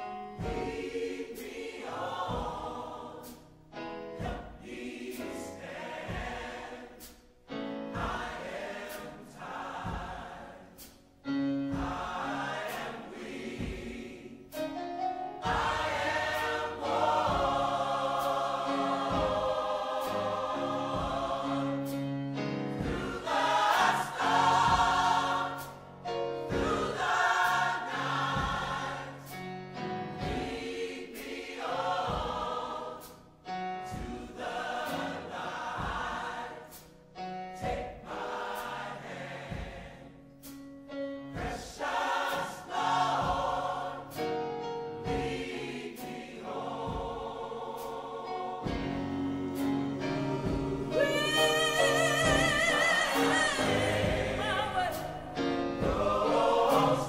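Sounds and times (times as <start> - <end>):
choir singing: 0.0 - 57.0.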